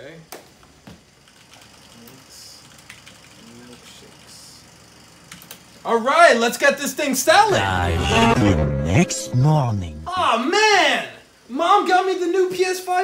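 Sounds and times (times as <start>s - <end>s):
faint mumbling: 7.5s - 10.2s.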